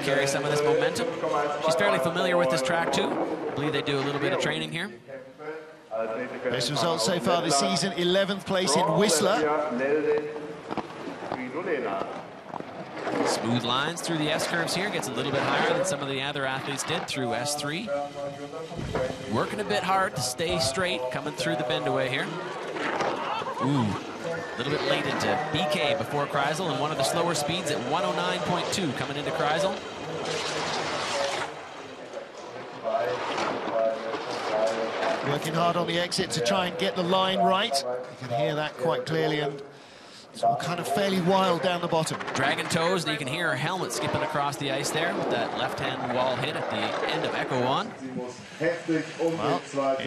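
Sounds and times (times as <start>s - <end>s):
faint voice: 23.2s - 24.4s.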